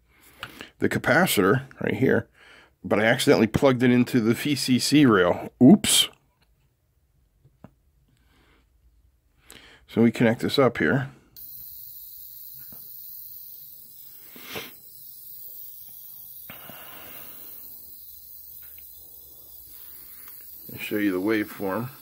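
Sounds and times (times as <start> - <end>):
high-pitched tweeter whine: 11.4 - 22.0.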